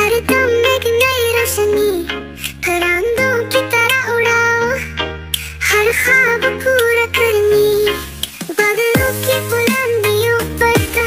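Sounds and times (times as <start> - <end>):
child-like voice singing: 0.0 - 5.0, 5.6 - 11.0
backing music: 0.0 - 11.0.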